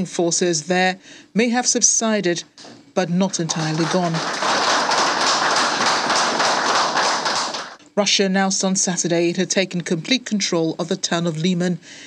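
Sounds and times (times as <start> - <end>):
group of people applauding: 3.3 - 7.8.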